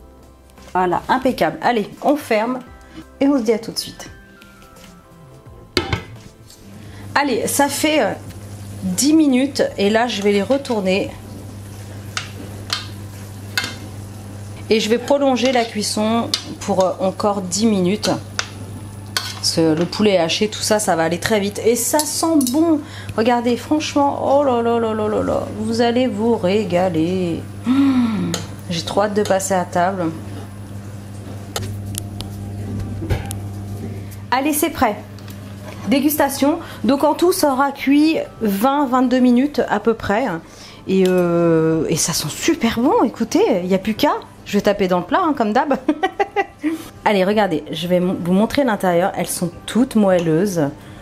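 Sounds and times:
steady low hum: 5.4s - 45.1s
metal spoon clicking against pan: 22.0s - 22.6s.

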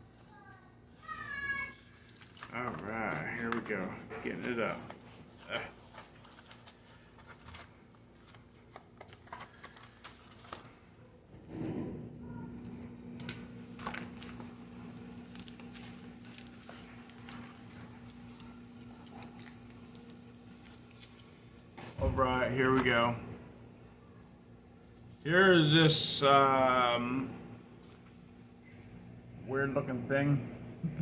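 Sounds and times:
packaging crinkling and rustling: 2.0s - 11.0s, 13.2s - 22.0s.

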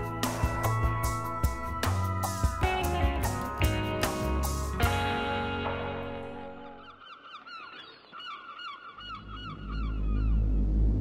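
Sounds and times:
birds honking calls: 6.4s - 10.6s
deep rumble: 9.2s - 11.0s.

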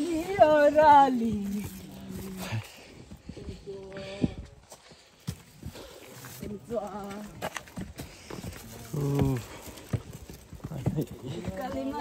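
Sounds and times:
footsteps on rocky trail: 0.0s - 12.0s.

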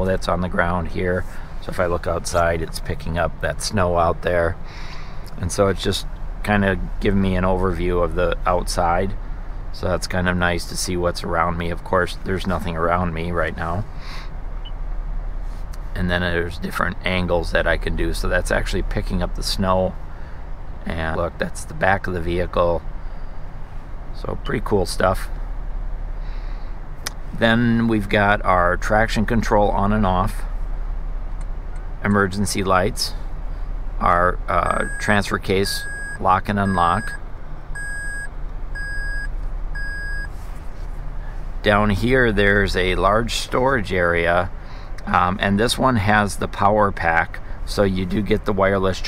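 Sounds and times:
low steady hum: 0.0s - 49.0s
pickup truck engine idling: 0.0s - 49.0s
car warning chime beeping: 34.7s - 40.3s.

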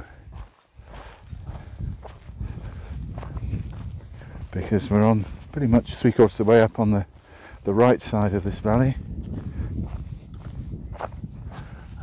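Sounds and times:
footsteps on dirt path: 0.0s - 12.0s.

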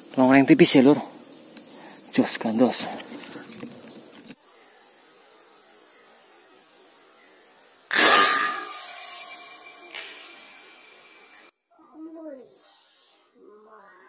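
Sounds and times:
low steady hiss: 0.0s - 14.0s
air rifle shot: 7.9s - 10.7s.

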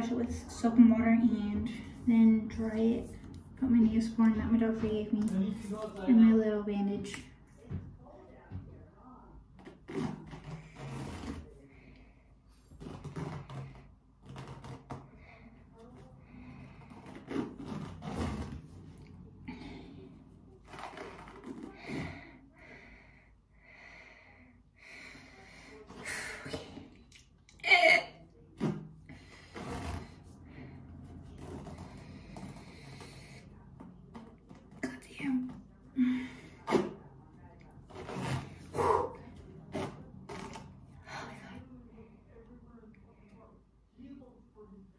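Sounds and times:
elastic bandage rustling: 9.5s - 11.9s, 12.6s - 19.8s, 28.5s - 34.8s
person breathing: 21.6s - 27.0s.

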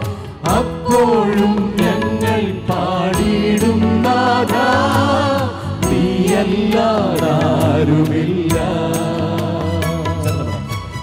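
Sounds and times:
men singing together: 0.0s - 10.5s
live band with drum beat: 0.0s - 11.0s.

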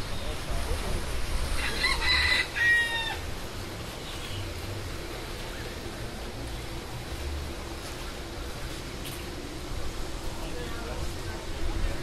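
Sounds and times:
rooster crowing: 1.6s - 3.3s.

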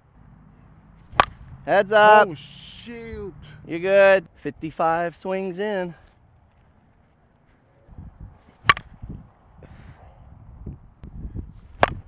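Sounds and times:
softball bat hitting ball cracks: 1.0s - 1.5s, 8.6s - 9.0s, 11.7s - 12.0s.

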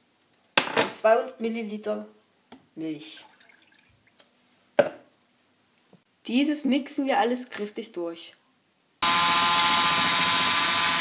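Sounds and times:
electric hand mixer whining: 9.0s - 11.0s.

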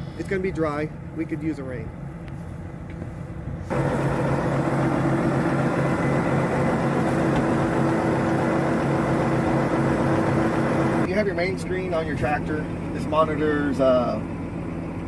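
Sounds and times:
tractor diesel engine idling: 3.7s - 15.0s.

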